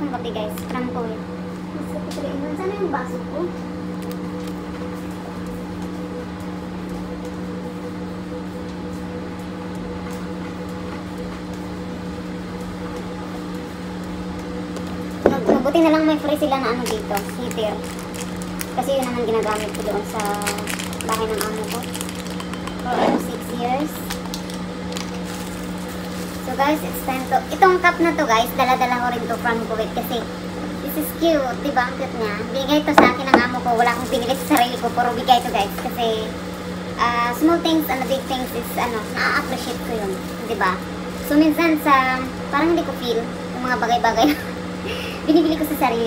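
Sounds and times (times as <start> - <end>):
appliance humming: 0.0 - 46.0.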